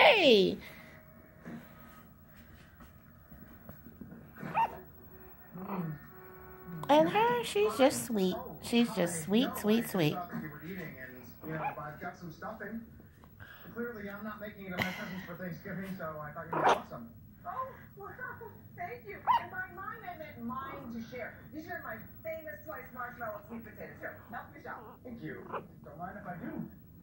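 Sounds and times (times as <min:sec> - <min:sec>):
woman's soft wordless voice: 0:00.0 - 0:00.6, 0:06.8 - 0:10.2
puppy yip: 0:04.5 - 0:04.8, 0:19.3 - 0:19.5.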